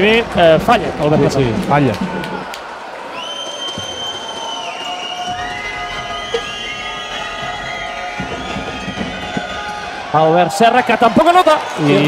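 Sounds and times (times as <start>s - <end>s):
crowd hum: 0.0s - 12.0s
crowd whistling: 1.8s - 12.0s.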